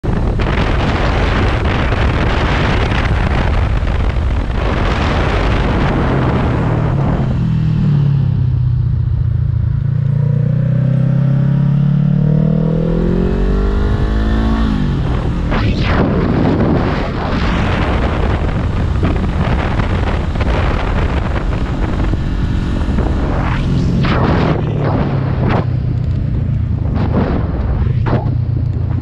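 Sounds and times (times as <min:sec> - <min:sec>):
wind noise on microphone: 0:00.0 - 0:08.4, 0:12.6 - 0:29.0
motorcycle engine: 0:00.0 - 0:29.0.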